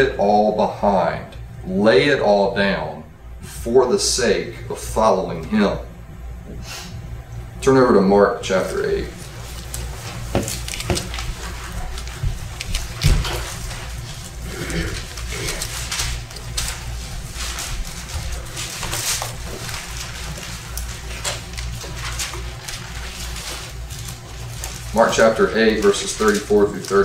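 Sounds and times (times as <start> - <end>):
low room hum: 0.0 - 27.0
crisp paper crackles: 8.6 - 27.0
book pages rustling: 8.9 - 27.0.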